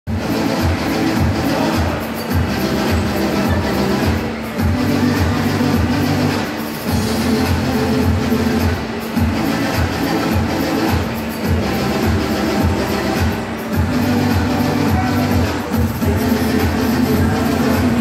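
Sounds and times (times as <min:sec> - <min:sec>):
loud dance music: 0:00.1 - 0:18.0.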